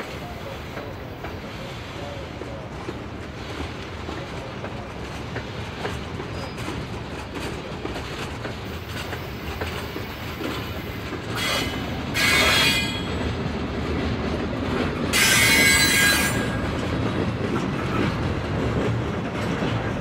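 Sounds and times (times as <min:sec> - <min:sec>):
train wheels rumbling on rail: 0:00.0 - 0:20.0
train wheels squealing: 0:06.2 - 0:07.6, 0:08.8 - 0:13.3, 0:15.1 - 0:16.7.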